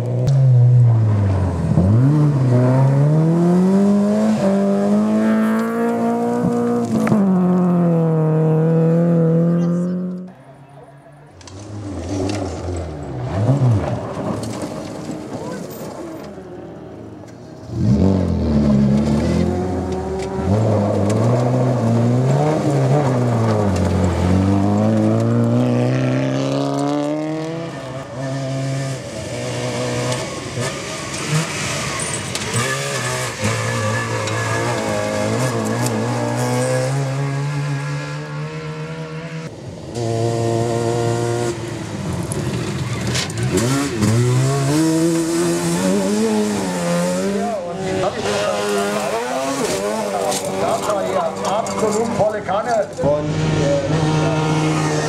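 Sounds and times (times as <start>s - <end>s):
rally car engines revving: 0.0s - 55.0s.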